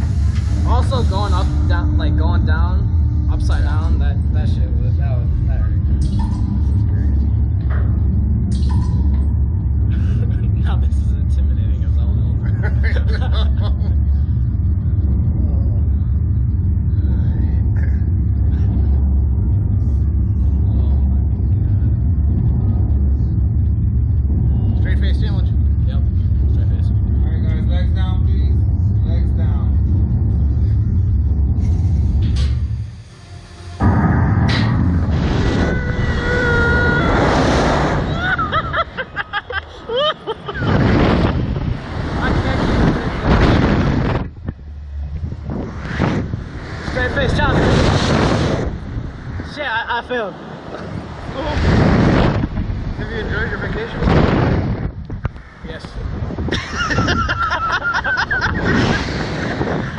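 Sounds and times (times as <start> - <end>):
loud low rumble: 0.0 - 59.9
rush of wind: 0.0 - 59.9.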